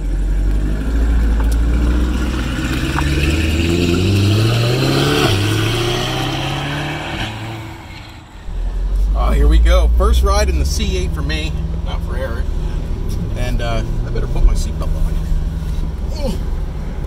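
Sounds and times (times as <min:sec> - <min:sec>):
car engine accelerating: 0:00.0 - 0:17.0.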